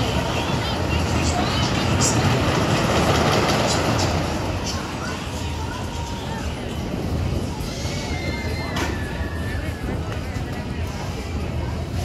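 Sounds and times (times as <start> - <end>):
people talking: 0.0 - 12.0
ride machinery rumbling: 0.0 - 12.0.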